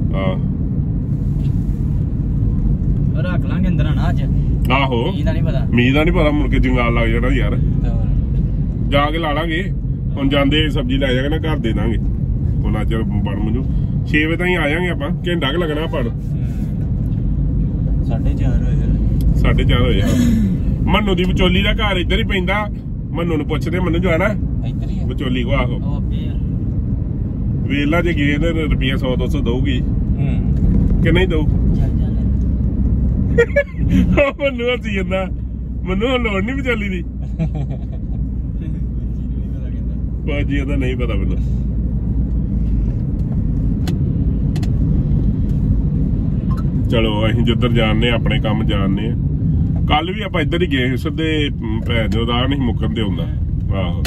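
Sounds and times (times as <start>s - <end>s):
car engine and road noise: 0.0s - 54.0s
men talking: 3.2s - 8.1s, 8.8s - 16.4s, 18.0s - 24.4s, 25.0s - 26.4s, 27.6s - 31.6s, 33.4s - 41.6s, 46.8s - 49.2s, 49.8s - 54.0s.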